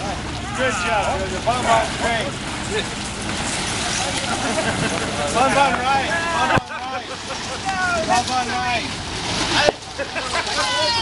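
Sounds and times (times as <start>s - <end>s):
elephants splashing through water: 0.0s - 11.0s.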